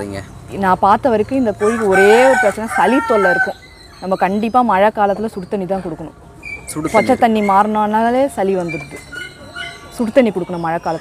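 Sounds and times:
woman talking: 0:00.5 - 0:06.2, 0:06.9 - 0:09.2, 0:09.9 - 0:11.0
rooster crowing: 0:01.6 - 0:03.7.

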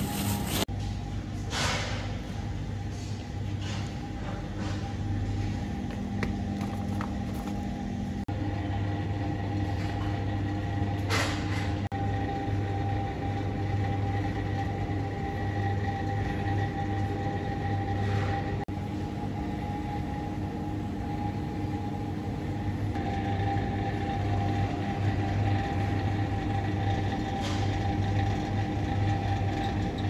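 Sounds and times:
refrigerated display cases humming: 0:00.0 - 0:30.0.

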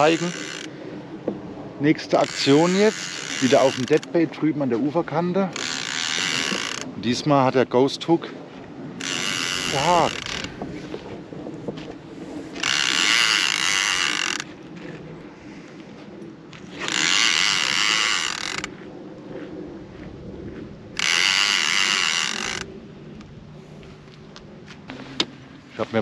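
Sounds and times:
fishing reel drag ratcheting: 0:00.0 - 0:00.8, 0:02.0 - 0:04.2, 0:05.5 - 0:06.9, 0:09.0 - 0:10.6, 0:12.5 - 0:14.5, 0:16.6 - 0:18.7, 0:21.0 - 0:22.7.

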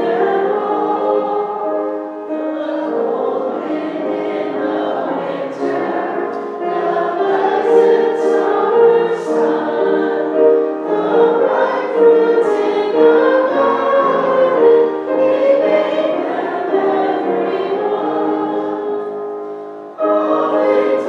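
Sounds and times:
voices singing a hymn: 0:00.0 - 0:21.0.

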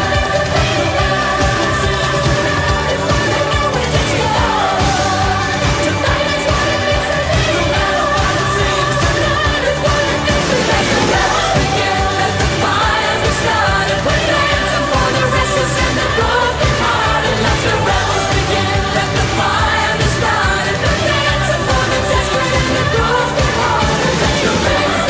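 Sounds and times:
rock band playing: 0:00.0 - 0:25.0
woman singing lead: 0:00.0 - 0:25.0.

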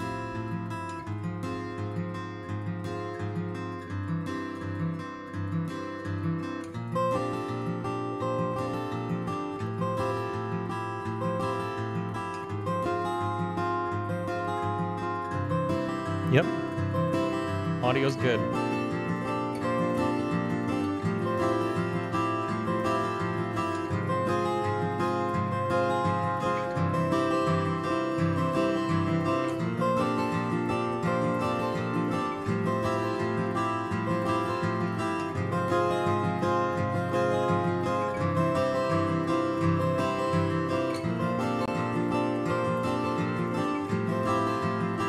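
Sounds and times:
acoustic guitar music: 0:00.0 - 0:45.0.

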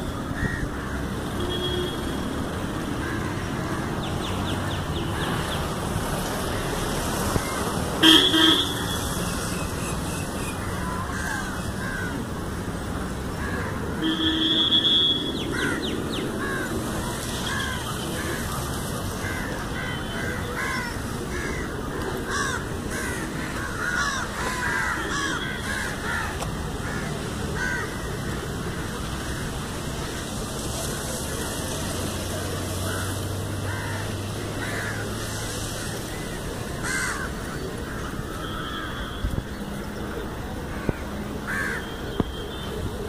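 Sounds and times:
steady rushing noise: 0:00.0 - 0:14.1, 0:15.0 - 0:43.0
birds giving harsh calls: 0:02.9 - 0:30.4, 0:32.7 - 0:42.7.

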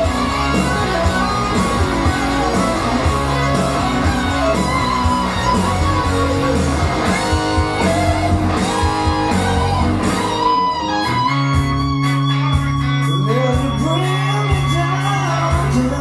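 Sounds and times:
electric guitar: 0:00.0 - 0:16.0
rock backing track: 0:00.0 - 0:16.0.

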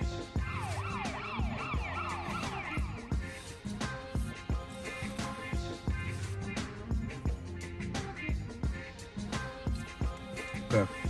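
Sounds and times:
hip-hop music with beat: 0:00.0 - 0:11.0
siren-like wail: 0:00.3 - 0:03.2.

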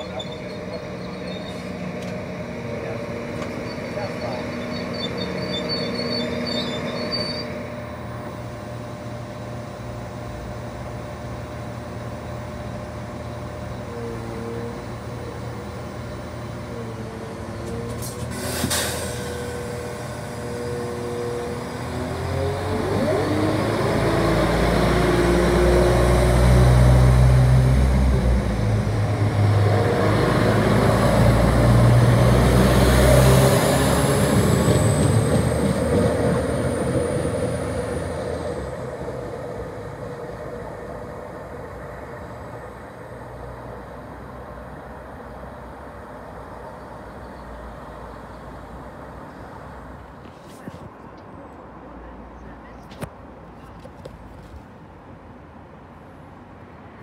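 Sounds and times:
diesel train engines accelerating: 0:00.0 - 0:50.3.

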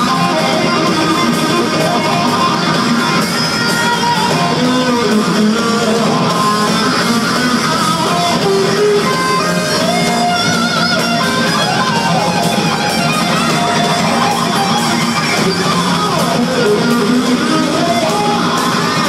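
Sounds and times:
electric guitar lead: 0:00.0 - 0:19.0
live hard rock band: 0:00.0 - 0:19.0.

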